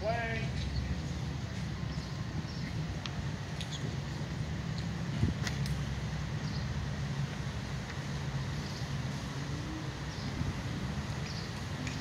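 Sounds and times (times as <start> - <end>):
low outdoor background hum: 0.0 - 12.0.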